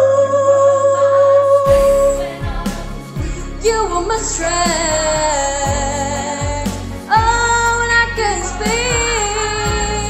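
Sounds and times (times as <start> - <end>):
pop backing track: 1.5 - 10.0
deep repeating bass beat: 1.7 - 10.0.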